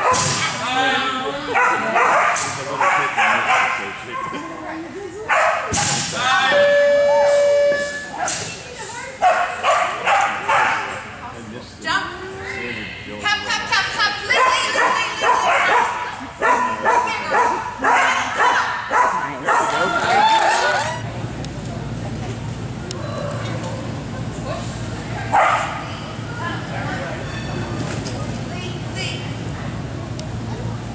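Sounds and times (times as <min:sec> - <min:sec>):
background chatter: 0:00.0 - 0:30.9
dogs barking and yipping: 0:01.5 - 0:04.5, 0:05.3 - 0:05.7, 0:09.2 - 0:11.0, 0:14.3 - 0:21.0, 0:25.3 - 0:25.8.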